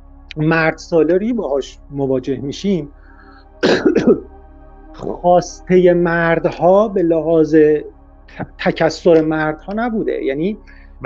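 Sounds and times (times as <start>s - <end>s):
man clearing his throat: 3.6s - 4.2s.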